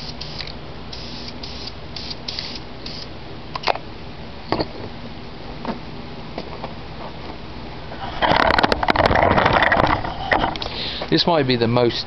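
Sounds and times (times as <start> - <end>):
rough rustling and crackling: 6.4 - 10.8.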